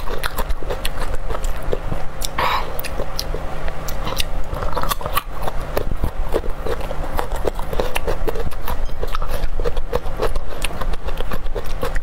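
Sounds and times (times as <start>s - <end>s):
chewing garlic crunches: 0.0s - 12.0s.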